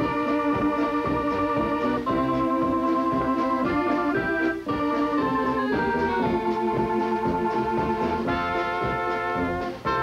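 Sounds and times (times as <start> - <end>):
accordion chords: 0.0 - 10.0
drums: 0.0 - 10.0
polka band playing: 0.0 - 10.0.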